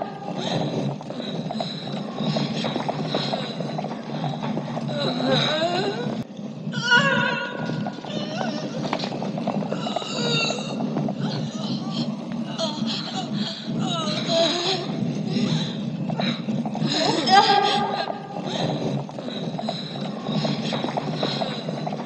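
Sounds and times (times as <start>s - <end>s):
hooves clopping on stone: 0.0s - 22.0s
horses whinnying: 0.0s - 22.0s.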